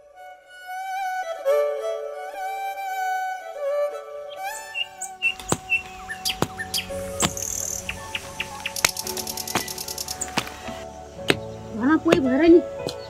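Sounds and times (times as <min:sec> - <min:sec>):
violin music: 0:00.0 - 0:13.0
quick bird chirps: 0:04.7 - 0:10.6
sharp clicks: 0:08.7 - 0:11.4.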